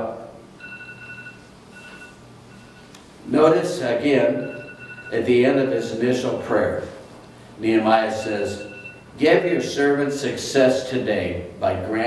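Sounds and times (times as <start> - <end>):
high electronic beeps: 0.6 - 2.9, 4.3 - 5.3, 8.1 - 9.1.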